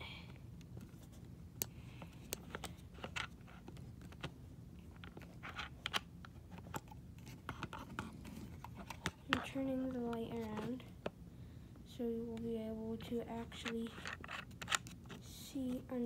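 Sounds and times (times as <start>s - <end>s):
phone handling clicks and scrapes: 2.0s - 9.5s, 13.6s - 15.2s.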